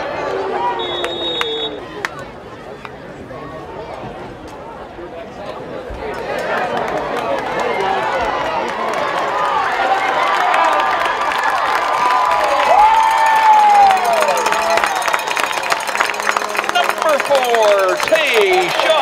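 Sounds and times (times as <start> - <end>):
crowd cheering and shouting: 0.0 - 4.2, 5.9 - 19.0
crowd clapping: 6.2 - 19.0.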